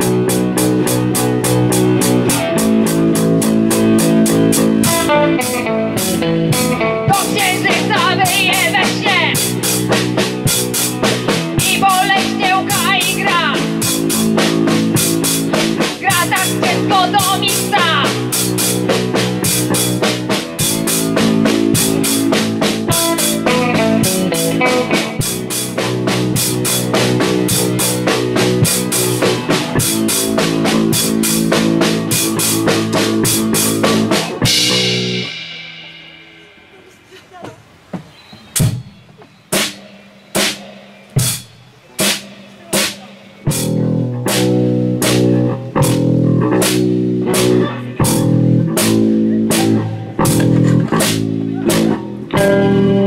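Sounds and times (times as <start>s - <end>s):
sharp percussion hits: 0.0s - 37.0s, 38.5s - 47.6s
live rock band playing: 0.0s - 37.9s, 38.5s - 53.0s.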